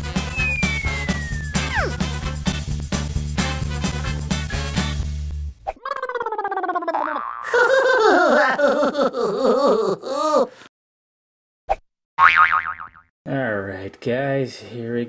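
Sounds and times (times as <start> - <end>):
intro music: 0.1 - 4.0
falling pitched sweep: 0.3 - 2.6.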